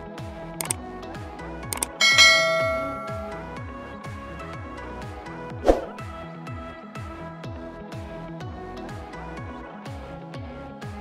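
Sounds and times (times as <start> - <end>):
background music with steady beat: 0.0 - 11.0
quick clicks: 0.6 - 0.8, 1.7 - 2.0
bright bell ding: 1.9 - 3.6.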